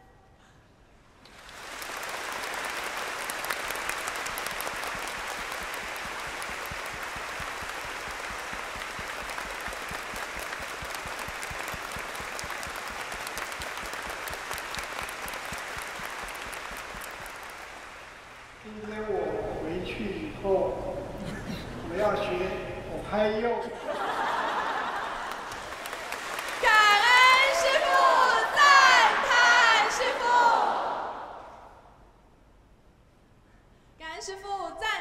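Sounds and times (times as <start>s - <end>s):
audience applauding: 1.3s - 18.8s, 24.0s - 31.2s.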